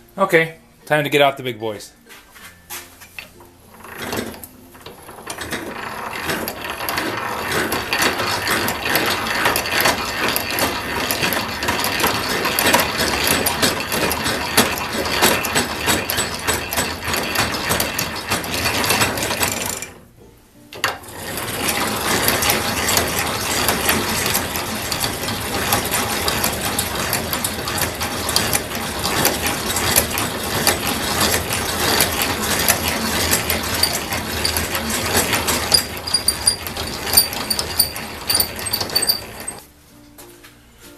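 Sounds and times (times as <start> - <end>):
drill press gears clicking: 3.2 - 20.0, 20.7 - 39.6.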